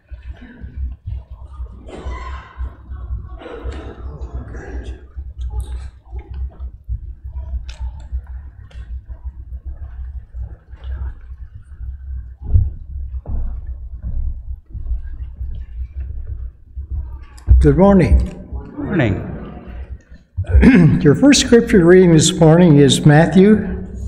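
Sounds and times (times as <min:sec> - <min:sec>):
faint clicks and rustles: 0:00.0 - 0:17.6
low room rumble: 0:00.0 - 0:24.0.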